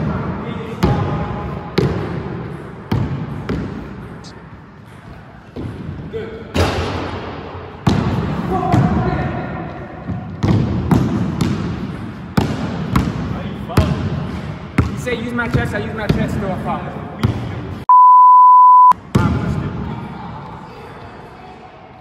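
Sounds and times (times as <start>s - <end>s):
basketball bouncing in hall: 0.0s - 4.2s, 5.4s - 17.6s.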